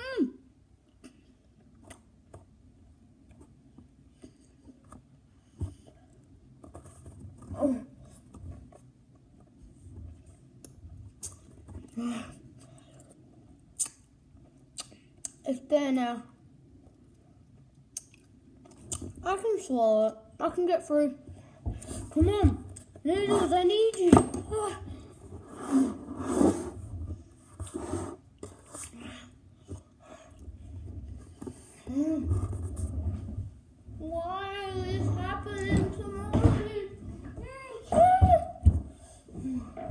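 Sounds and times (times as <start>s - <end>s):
boy grunting and breathing heavily: 11.9s - 12.5s, 38.8s - 39.9s
mouth clicks: 13.8s - 14.1s.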